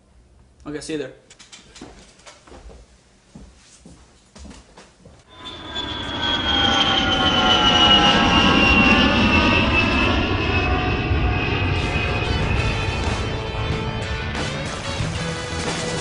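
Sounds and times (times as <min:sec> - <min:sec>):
jet engine rumble and whine: 0:05.3 - 0:14.3.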